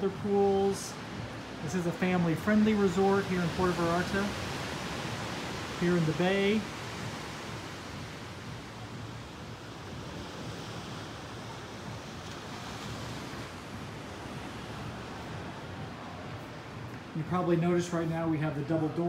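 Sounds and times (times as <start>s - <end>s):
ocean surf washing onto beach: 0.0s - 19.0s.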